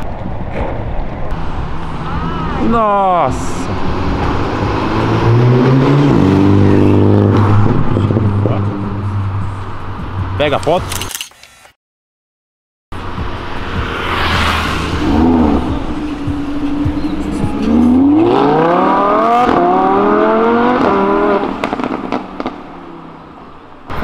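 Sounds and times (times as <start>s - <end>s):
sports car engine accelerating: 3.6s - 10.4s, 13.0s - 24.0s.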